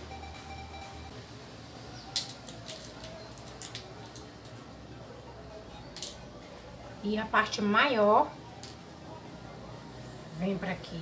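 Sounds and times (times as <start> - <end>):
small hard objects clicking: 2.1 - 4.6, 5.9 - 6.2.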